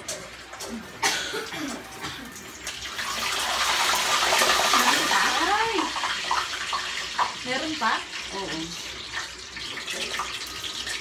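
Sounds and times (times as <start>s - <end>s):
meat sizzling in hot oil: 1.7s - 11.0s.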